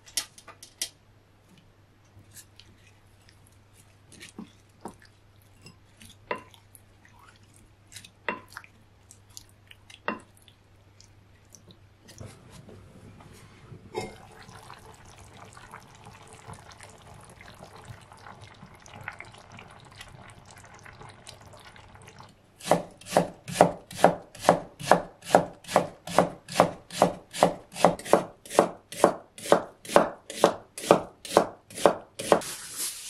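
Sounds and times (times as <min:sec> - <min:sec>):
pot bubbling: 0:13.9 - 0:23.7.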